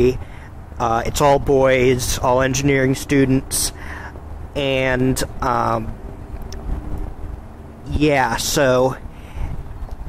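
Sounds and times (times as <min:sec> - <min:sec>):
faint hum: 0:00.0 - 0:10.0
outdoor background rumble: 0:00.0 - 0:10.0.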